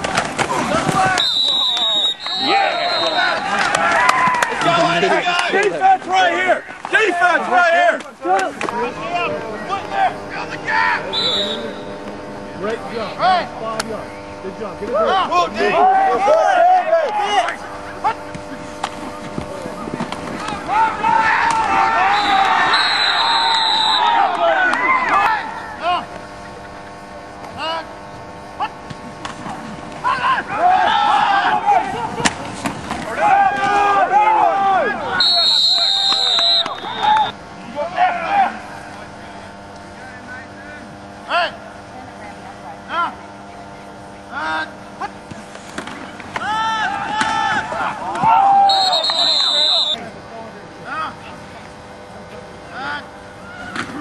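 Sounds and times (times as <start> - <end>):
people shouting and cheering: 0.4 - 11.9, 14.9 - 18.3, 20.4 - 26.1, 30.0 - 32.3, 33.0 - 39.1, 46.3 - 50.0.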